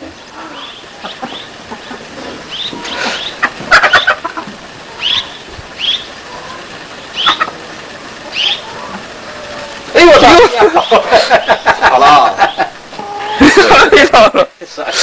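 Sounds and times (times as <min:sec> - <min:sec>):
high-pitched animal chirps: 0:04.9 - 0:07.5, 0:08.3 - 0:09.8.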